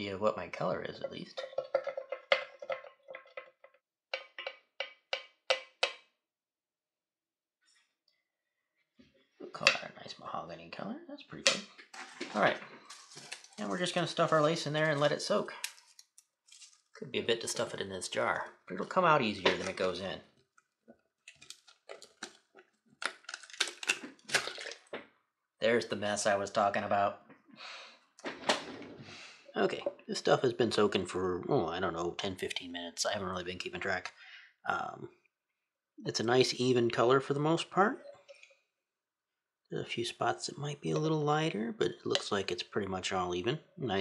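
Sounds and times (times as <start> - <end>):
wooden spoon clinking glass jar: 1.3 - 6.0.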